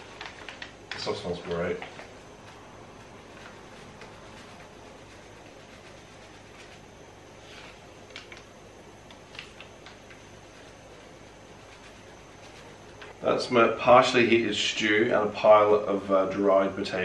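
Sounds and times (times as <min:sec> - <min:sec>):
paper packet crinkling: 0:00.0 - 0:02.1.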